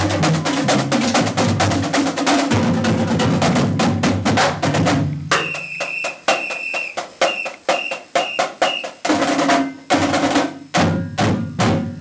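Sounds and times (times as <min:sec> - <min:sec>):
snare drums playing a cadence: 0:04.5 - 0:11.4.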